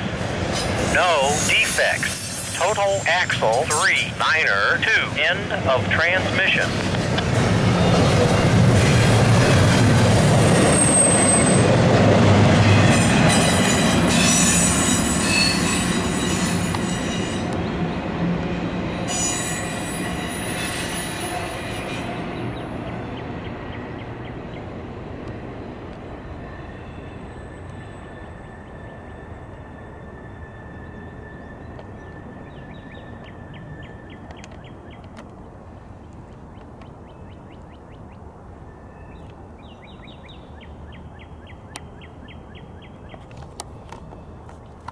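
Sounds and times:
freight train wheels rumbling: 0.0s - 37.1s.

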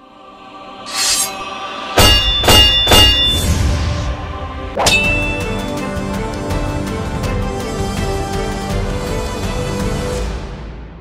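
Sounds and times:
cinematic intro music: 0.0s - 11.0s
rising whoosh: 0.8s - 2.0s
heavy hits with metallic ringing: 2.0s - 3.6s.

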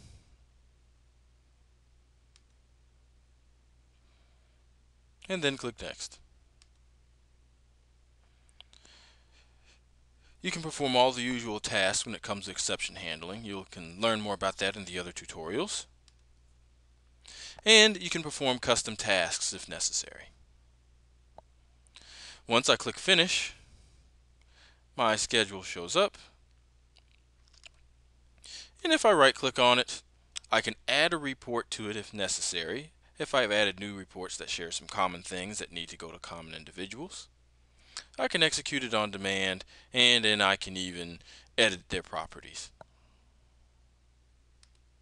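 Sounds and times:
low electrical hum: 0.0s - 45.0s
man speaking: 5.2s - 6.2s, 10.4s - 15.9s, 17.4s - 20.4s, 22.4s - 23.6s, 25.0s - 26.4s, 28.8s - 37.3s, 38.0s - 42.8s
faint mouse click: 44.6s - 44.9s.

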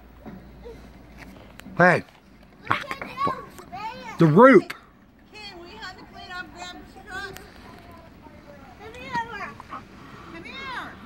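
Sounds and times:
faint indistinct voices talking: 0.2s - 11.0s
child's high voice: 2.6s - 4.2s.

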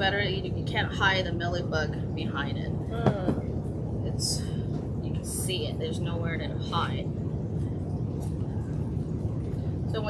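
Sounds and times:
ventilation fans rumbling: 0.0s - 10.0s.

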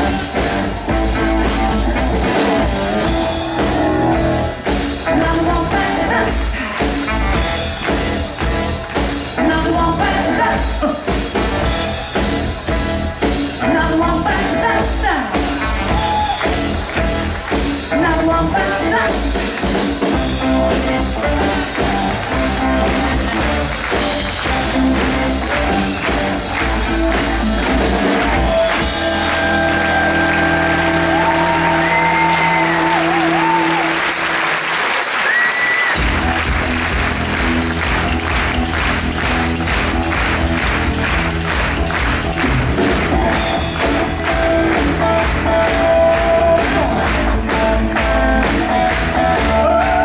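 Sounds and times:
bending lead guitar line: 0.0s - 33.7s, 36.0s - 50.0s
rock band playing: 0.0s - 50.0s.

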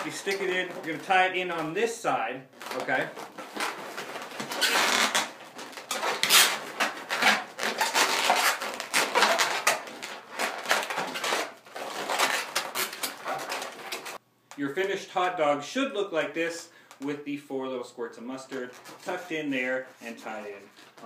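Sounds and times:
balloons rubbing and squeaking: 0.0s - 14.2s, 18.6s - 21.0s.

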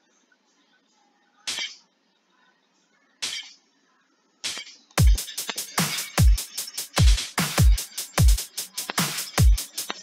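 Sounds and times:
hi-hat hits: 1.5s - 1.9s, 3.2s - 3.6s, 4.4s - 10.0s.

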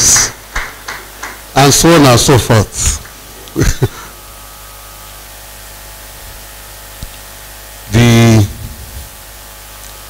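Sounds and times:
sound system hiss and hum: 0.0s - 10.0s
man speaking into a microphone: 1.6s - 3.0s, 7.8s - 8.8s.

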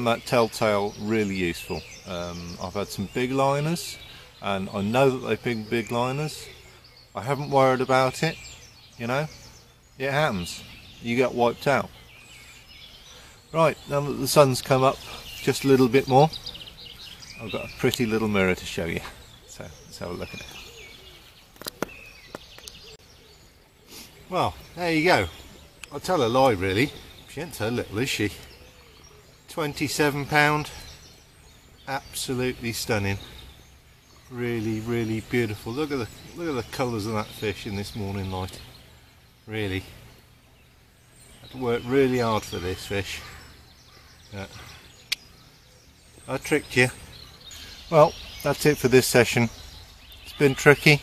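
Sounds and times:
distant birds chirping: 0.0s - 51.0s
faint outdoor background: 0.0s - 51.0s.

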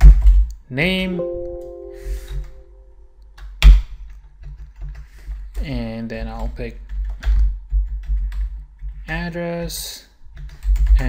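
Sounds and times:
low steady hum: 1.2s - 3.4s.

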